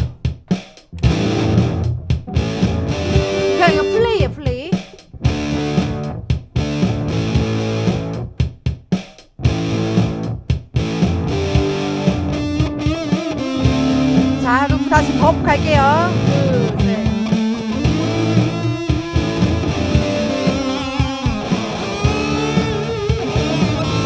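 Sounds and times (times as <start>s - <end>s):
overdriven electric guitar: 1.0s - 4.2s, 5.2s - 8.2s, 9.4s - 24.0s.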